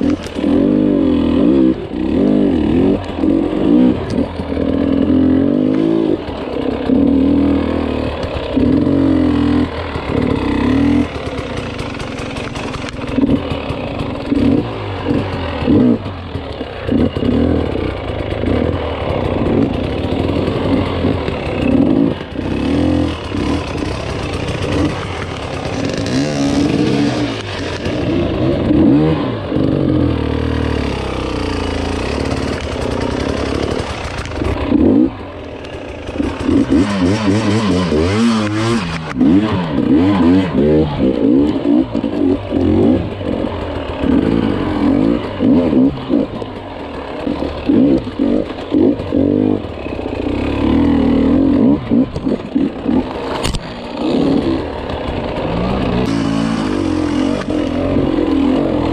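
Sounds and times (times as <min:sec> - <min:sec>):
dirt bike engine revving: 0:00.0 - 0:58.9.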